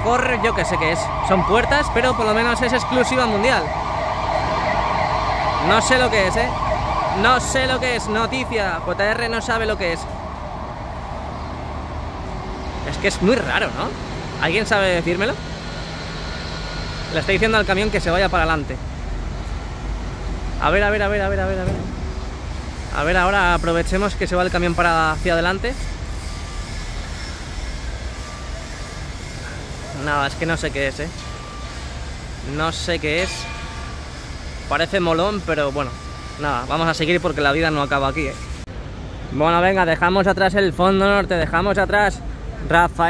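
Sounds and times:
construction site noise: 0.0 - 43.0
street traffic: 0.0 - 43.0
vehicle engines rumbling: 0.0 - 43.0.

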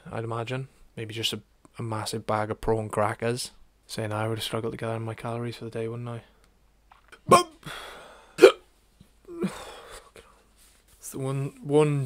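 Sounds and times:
man making sharp vocal sounds: 7.2 - 7.8.

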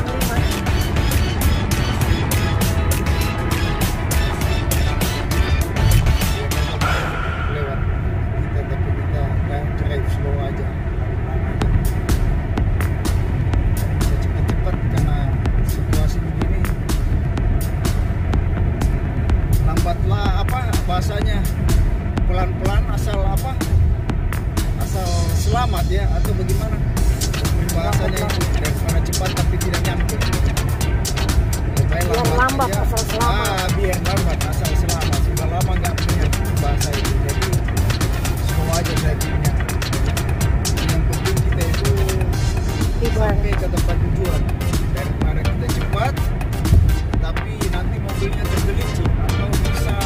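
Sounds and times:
background music with singing: 0.0 - 8.2, 11.6 - 50.0
car road and engine noise: 0.0 - 50.0.

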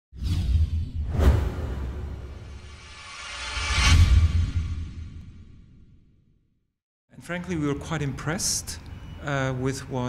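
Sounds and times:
whoosh: 0.2 - 6.1.

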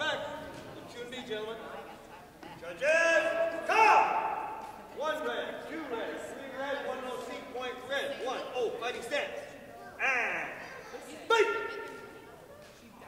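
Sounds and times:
high-pitched shouts: 2.9 - 4.7, 9.8 - 12.0.

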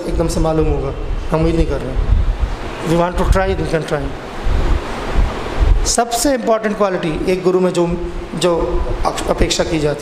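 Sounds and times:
wind buffeting microphone: 0.0 - 9.8.

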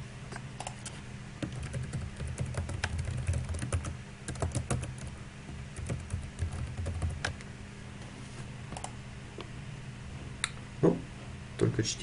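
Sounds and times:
steady low hum: 0.0 - 12.0
typing on computer keyboard: 1.4 - 5.1, 5.8 - 7.4.

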